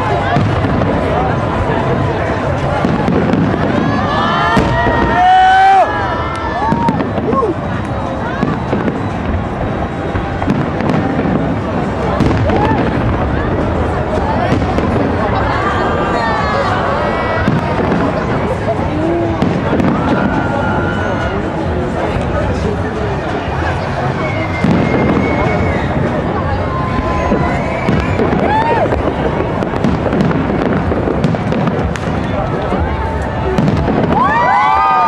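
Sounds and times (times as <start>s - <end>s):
crowd shouting and talking: 0.0s - 35.0s
fireworks bursting and crackling: 0.0s - 35.0s.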